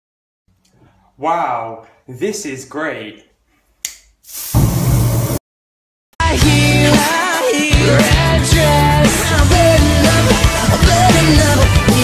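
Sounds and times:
aerosol spray hiss: 0:04.2 - 0:05.4.

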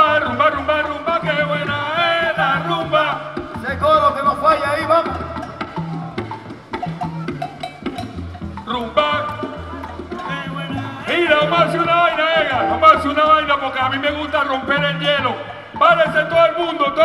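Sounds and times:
salsa band playing: 0:00.0 - 0:17.0
wood-block percussion strikes: 0:00.0 - 0:17.0
bass line: 0:11.8 - 0:14.4.

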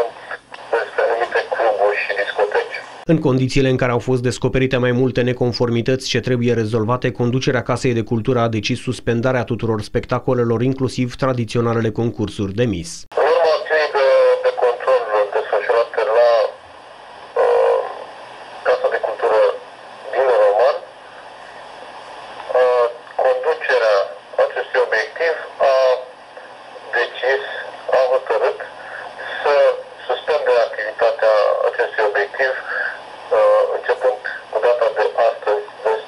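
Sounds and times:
man speaking over telephone: 0:00.0 - 0:16.6, 0:17.4 - 0:20.9, 0:22.4 - 0:36.0.

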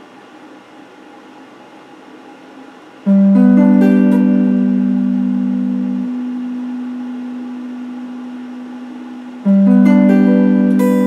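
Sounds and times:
electric guitar note ringing: 0:03.1 - 0:11.0.

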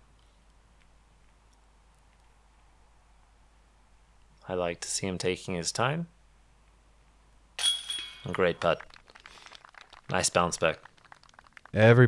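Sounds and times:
putt hitting metal basket chains: 0:07.6 - 0:08.8.

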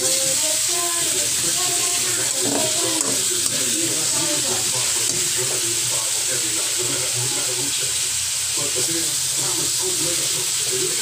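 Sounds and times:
vegetables sizzling in hot oil: 0:00.0 - 0:11.0.

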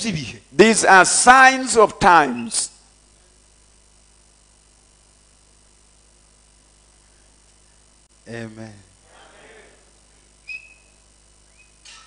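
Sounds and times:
high whistle: 0:10.4 - 0:11.8.

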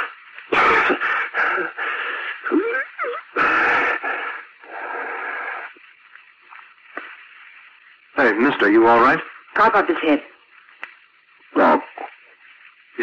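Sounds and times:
man coughing and wheezing: 0:00.5 - 0:01.8.

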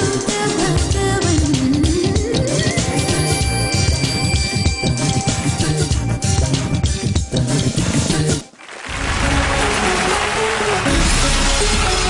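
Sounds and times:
music playing: 0:00.0 - 0:12.0
audience applauding: 0:08.5 - 0:12.0.

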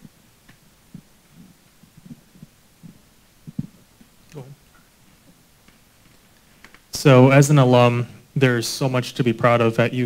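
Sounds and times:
microphone handling thumps: 0:00.9 - 0:04.1.

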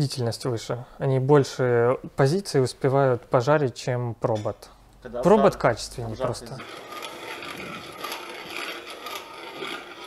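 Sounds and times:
hand-cranked coffee mill grinding: 0:06.0 - 0:10.0.

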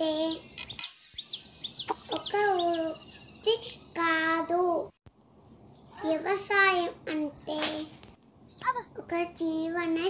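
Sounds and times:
high bird chirps: 0:00.2 - 0:04.0.

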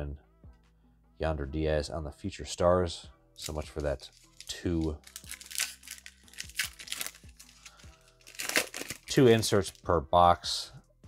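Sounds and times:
quiet background music: 0:00.0 - 0:11.0
wrapper crinkling as torn open: 0:03.4 - 0:09.6.

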